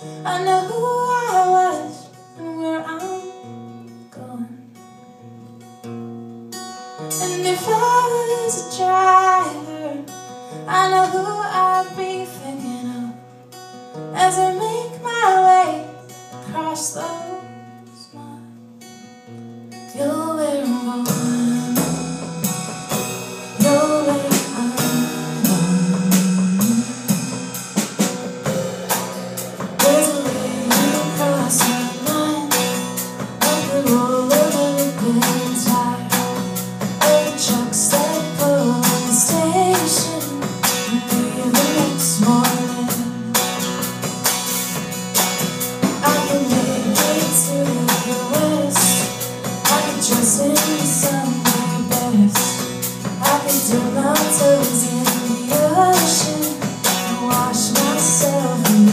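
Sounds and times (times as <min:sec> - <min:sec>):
woman singing: 0:00.0 - 0:04.8, 0:07.0 - 0:13.4, 0:14.0 - 0:18.6, 0:19.8 - 0:27.6, 0:29.6 - 0:43.8, 0:45.8 - 0:58.9
acoustic guitar strumming: 0:04.7 - 0:58.9
electric bass: 0:21.5 - 0:58.9.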